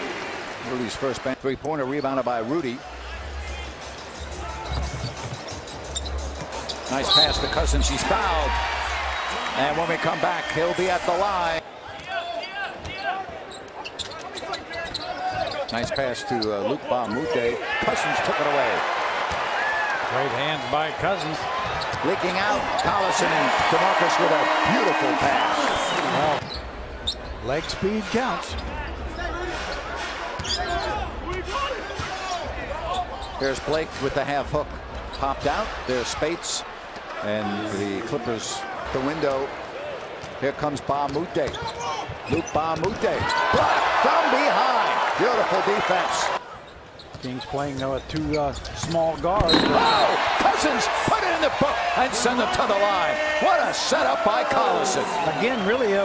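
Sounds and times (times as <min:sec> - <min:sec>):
sneakers squeaking on court: 0:04.0 - 0:07.7, 0:12.7 - 0:16.6, 0:26.3 - 0:27.8, 0:30.4 - 0:31.0, 0:41.0 - 0:43.6, 0:46.6 - 0:50.2
basketball bouncing: 0:48.8 - 0:50.0.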